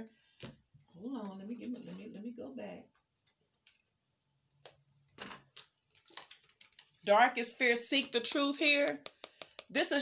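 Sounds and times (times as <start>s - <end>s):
cards clicking and tapping: 8.3s - 10.0s.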